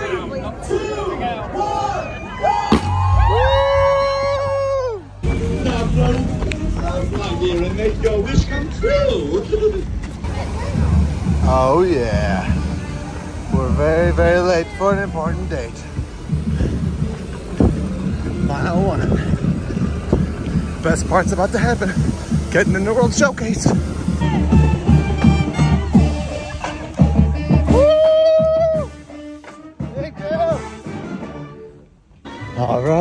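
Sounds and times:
sharp knock: 2.7 - 3.2
firework bang: 2.7 - 3.9
wind on microphone: 15.9 - 25.2.

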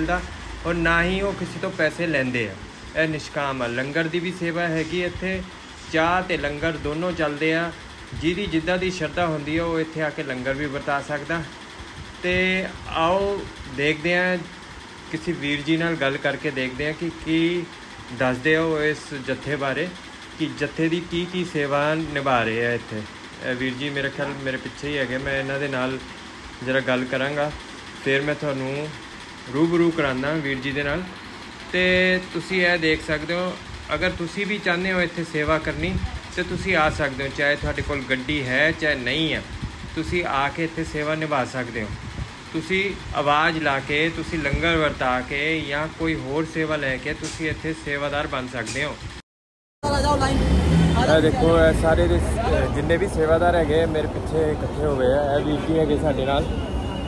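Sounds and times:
man talking: 0.0 - 11.6, 12.2 - 31.1, 31.7 - 49.0, 51.0 - 56.7
street traffic rumble: 0.0 - 49.2, 49.8 - 57.0.

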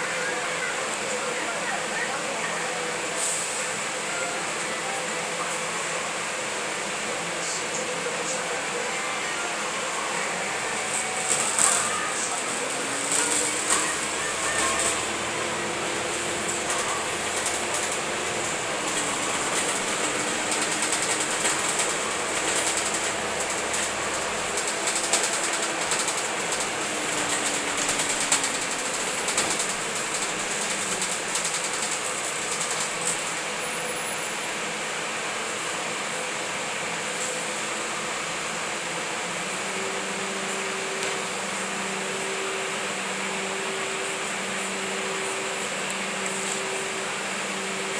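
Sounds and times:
bus diesel engine drone: 0.0 - 47.9.

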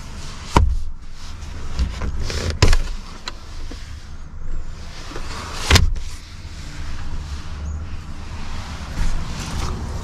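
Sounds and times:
car seat thump: 0.5 - 0.9, 5.2 - 6.1.

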